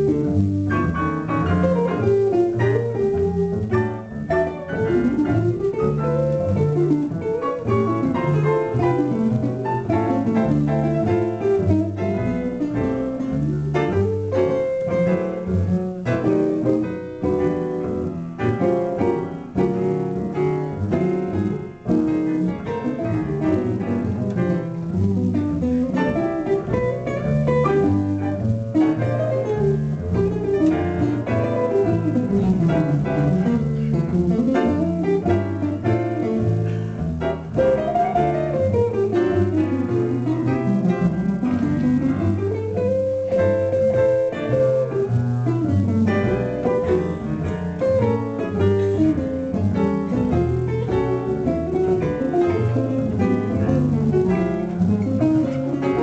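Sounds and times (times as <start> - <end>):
jazz guitar melody: 0.0 - 56.0
piano: 0.0 - 56.0
plucked double bass: 0.0 - 56.0.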